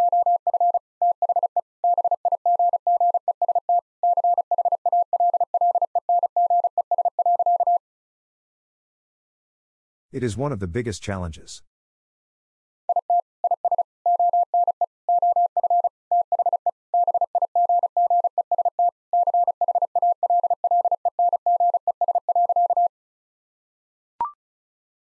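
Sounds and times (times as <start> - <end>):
morse code tone: 12.9 - 22.9.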